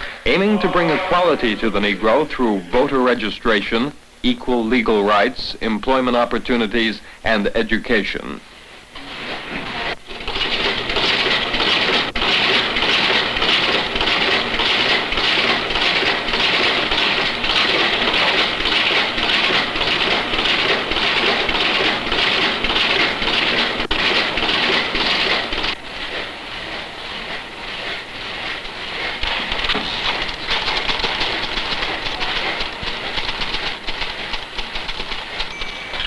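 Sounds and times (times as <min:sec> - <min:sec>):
machine clattering: 0:09.1 - 0:36.0.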